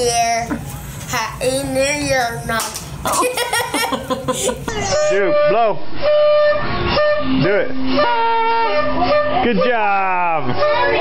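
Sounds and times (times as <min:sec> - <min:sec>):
party horns buzzing: 0:04.8 - 0:11.0
low party horn held: 0:04.9 - 0:09.8, 0:10.5 - 0:11.0.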